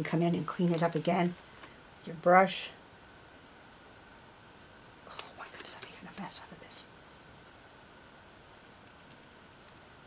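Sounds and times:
person whispering: 5.1 - 6.9.

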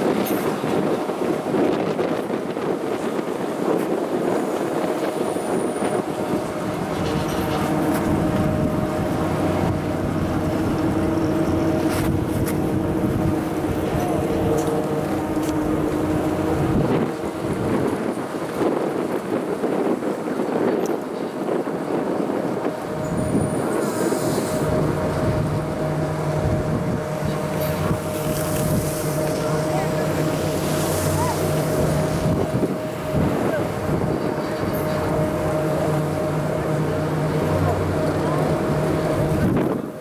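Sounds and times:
wind buffeting microphone: 0.0 - 40.0
chairlift machinery whine: 4.6 - 18.8, 22.0 - 40.0
deeper hum: 5.6 - 18.2.

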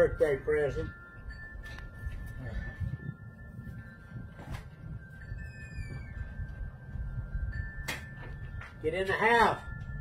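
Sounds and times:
faint falling whistle: 5.4 - 6.3.

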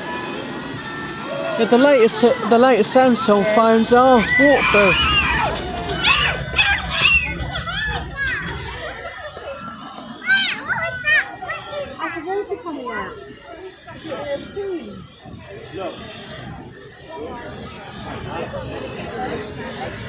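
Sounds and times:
adults talking: 0.0 - 20.0
young children chattering: 0.0 - 20.0.

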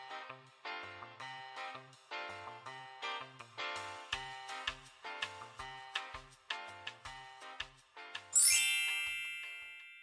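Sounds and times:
shimmering chime ding: 8.4 - 10.0.

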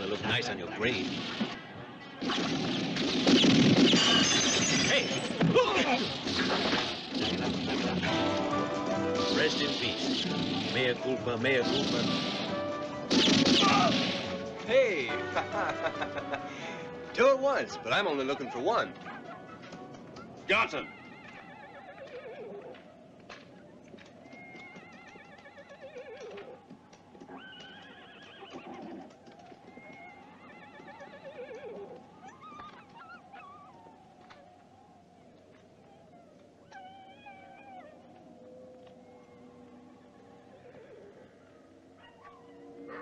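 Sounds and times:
horses whinnying: 17.2 - 34.9, 35.5 - 43.0.

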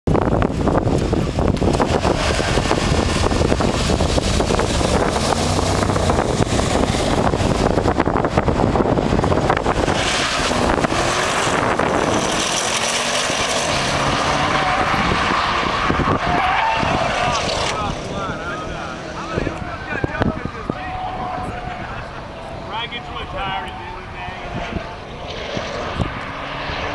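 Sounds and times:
car engines accelerating hard: 0.1 - 26.9
wind buffeting microphone: 0.1 - 26.9.

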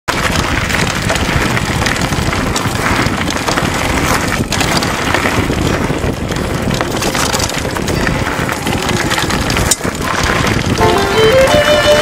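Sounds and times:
tyres rolling on gravel trail: 0.1 - 12.0
wind buffeting microphone: 0.1 - 12.0.

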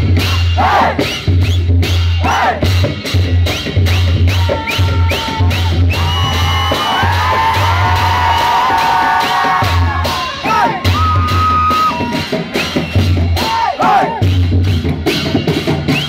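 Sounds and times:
drums and cymbals playing: 0.0 - 16.0
crowd whooping and shouting: 3.9 - 14.3.

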